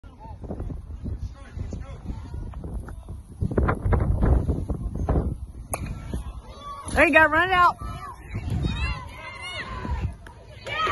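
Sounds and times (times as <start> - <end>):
low rumbling microphone noise: 0.1 - 10.3
bat hitting ball: 5.7 - 6.2.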